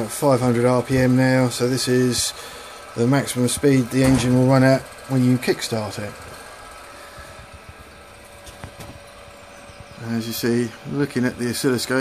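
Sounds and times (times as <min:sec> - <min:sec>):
motor running with faint whine: 0:00.0 - 0:12.0.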